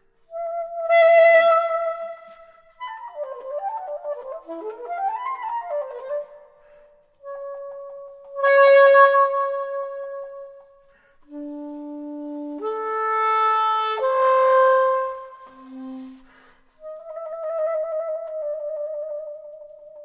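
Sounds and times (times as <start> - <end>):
soprano saxophone playing: 0.2 - 20.0.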